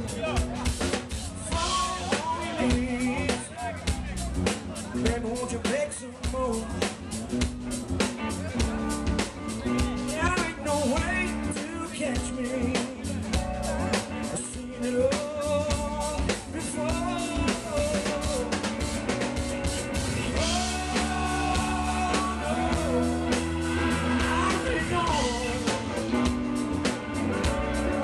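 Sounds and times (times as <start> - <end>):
bass guitar: 0.0 - 28.0
drum kit: 0.0 - 28.0
electric guitar: 0.0 - 28.0.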